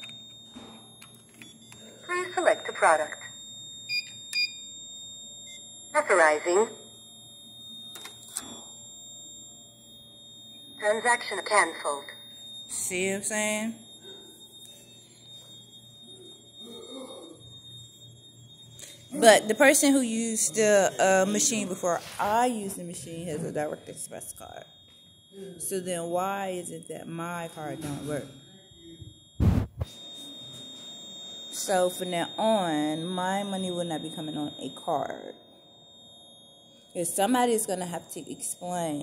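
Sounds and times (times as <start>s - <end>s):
high-pitched electronic whine: 5.4s - 39.0s
low hum: 28.9s - 29.9s.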